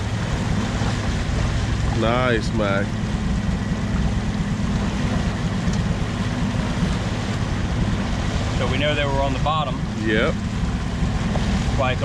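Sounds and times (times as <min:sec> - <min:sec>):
outboard motor running: 0:00.0 - 0:12.0
water noise: 0:00.0 - 0:12.0
wind: 0:00.0 - 0:12.0.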